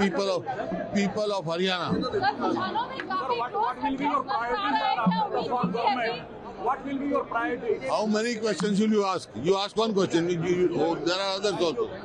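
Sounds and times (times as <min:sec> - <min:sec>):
voices talking over one another: 0:00.0 - 0:12.0.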